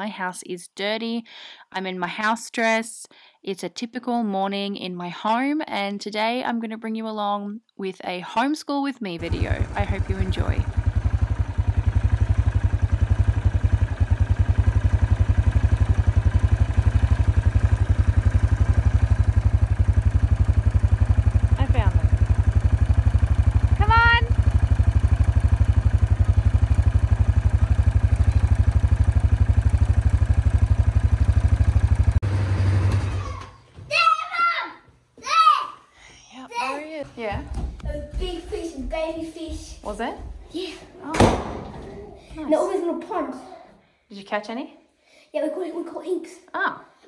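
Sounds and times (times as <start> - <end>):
quad bike engine running: 9.2 - 33.5.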